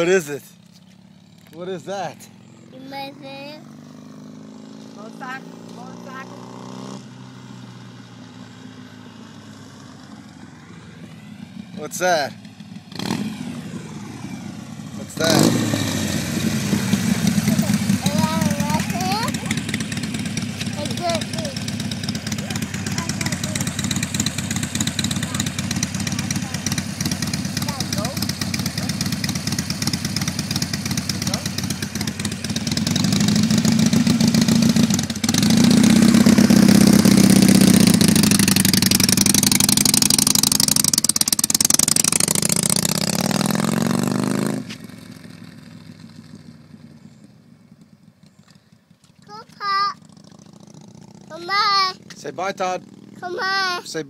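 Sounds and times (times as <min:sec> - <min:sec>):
motorcycle engine droning: 0:00.0 - 0:54.0.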